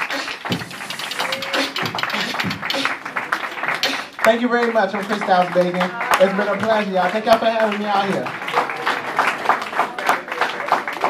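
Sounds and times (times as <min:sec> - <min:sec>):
metal spoons clattering rhythm: 0:00.0 - 0:08.2.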